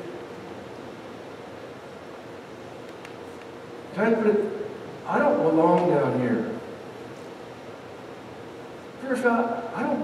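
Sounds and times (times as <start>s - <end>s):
faint steady hum: 0.0s - 10.0s
room tone hiss: 0.0s - 10.0s.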